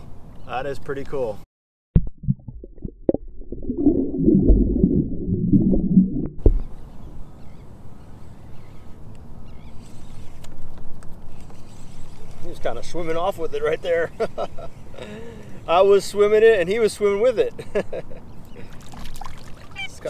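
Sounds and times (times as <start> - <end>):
water sloshing and gurgling: 2.0 - 6.8, 18.6 - 20.0.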